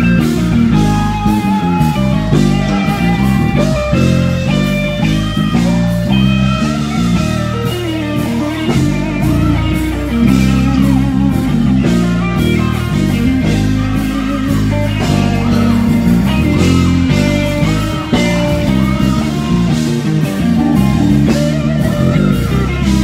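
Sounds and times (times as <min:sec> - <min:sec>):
bass line: 0:00.0 - 0:23.0
gospel band playing: 0:00.0 - 0:23.0
guitar: 0:00.0 - 0:23.0
keyboard chords: 0:00.0 - 0:23.0.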